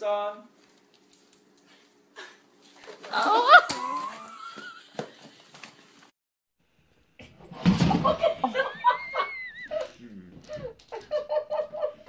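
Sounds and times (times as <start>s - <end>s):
people laughing: 7.9s - 12.0s.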